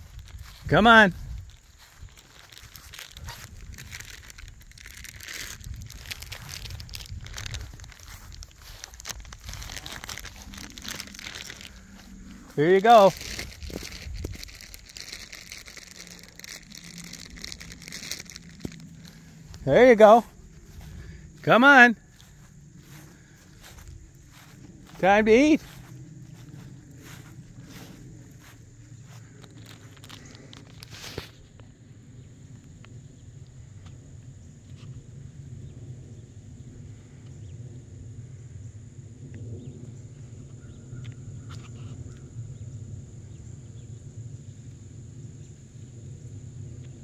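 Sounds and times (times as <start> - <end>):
rustling and crackling: 0.0 - 21.5, 22.1 - 31.8
footsteps on ground: 0.0 - 31.6.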